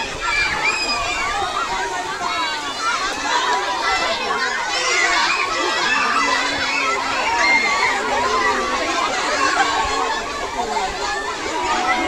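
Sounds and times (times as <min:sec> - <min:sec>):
children shouting and talking: 0:00.0 - 0:12.0.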